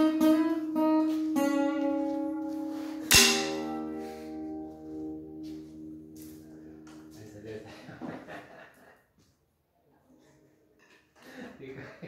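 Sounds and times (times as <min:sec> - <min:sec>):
acoustic guitar chord ringing: 0:00.0 - 0:07.5
man speaking: 0:07.1 - 0:07.9.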